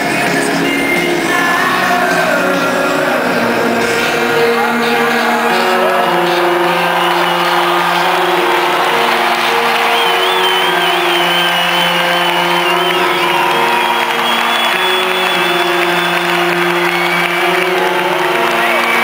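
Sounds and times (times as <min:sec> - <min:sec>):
sustained keyboard chords: 0:00.0 - 0:19.0
crowd cheering and whooping: 0:03.5 - 0:19.0.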